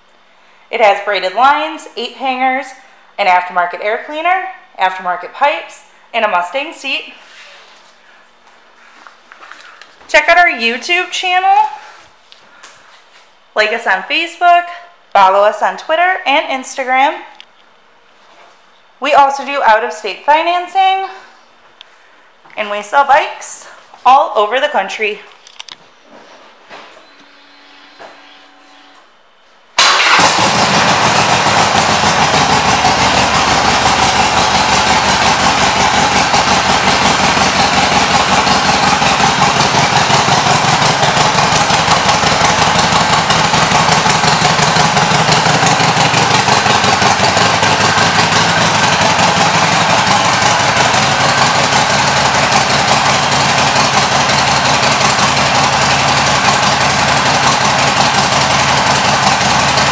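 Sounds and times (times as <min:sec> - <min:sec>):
motorcycle engine starting and idling: 0:29.8 - 0:59.9.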